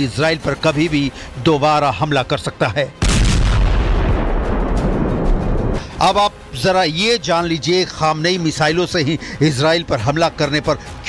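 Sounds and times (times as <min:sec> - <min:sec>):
loud explosive rumble: 0:03.0 - 0:05.8.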